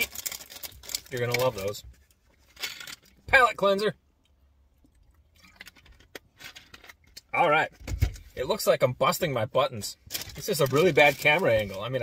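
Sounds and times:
plastic water bottle rustling: 10.1 - 12.0.

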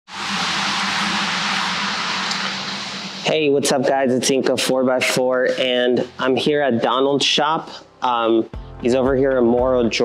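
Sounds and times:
low steady hum: 0.1 - 3.9.

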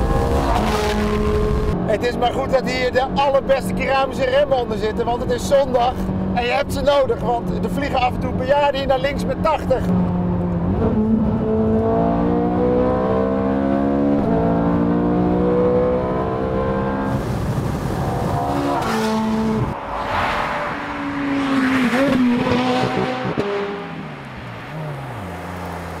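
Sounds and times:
car engine revving high: 0.0 - 1.9, 10.1 - 24.2
wind and tyre noise: 0.0 - 26.0
car passing at speed: 14.7 - 26.0.

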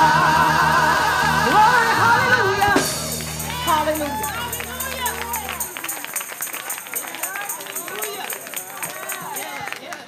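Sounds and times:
music: 0.0 - 9.8
voices calling out praise: 0.0 - 10.0
handclaps: 4.6 - 10.0.

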